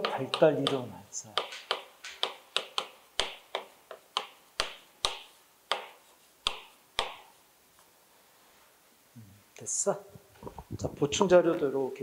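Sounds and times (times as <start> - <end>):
chalk tapping and scraping on board: 0.0 - 7.4.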